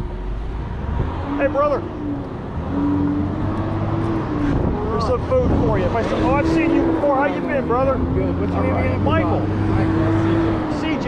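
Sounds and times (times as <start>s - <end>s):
cars passing rumble: 0.0s - 11.0s
engine hum: 0.0s - 11.0s
voices: 1.2s - 11.0s.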